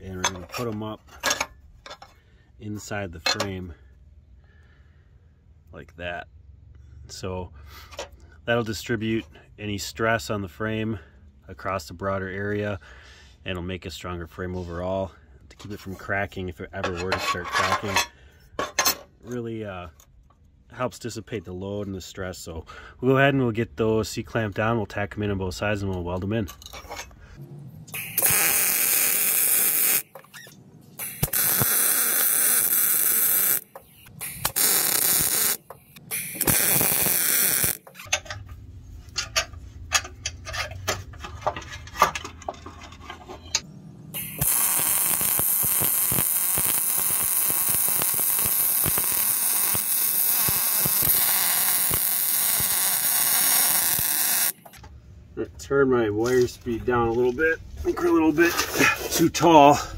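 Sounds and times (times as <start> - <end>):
welding arc crackling hiss: 28.0 - 30.2, 31.0 - 38.0, 44.2 - 54.7.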